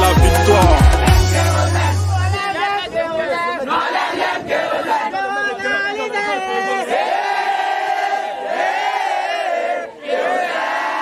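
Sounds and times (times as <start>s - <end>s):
voices singing in harmony: 0.0s - 11.0s.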